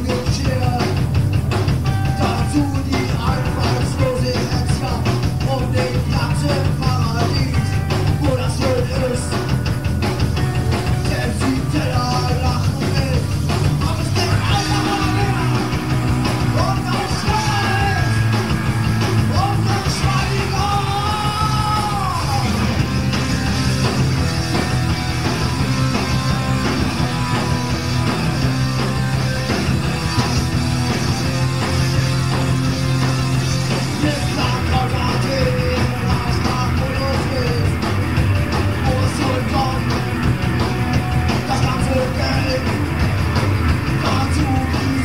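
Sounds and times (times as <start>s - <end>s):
punk rock band playing live: 0.0s - 45.0s
person singing and shouting: 2.0s - 9.5s, 10.9s - 22.9s, 33.8s - 37.9s, 38.7s - 40.0s, 41.3s - 42.8s, 44.0s - 45.0s.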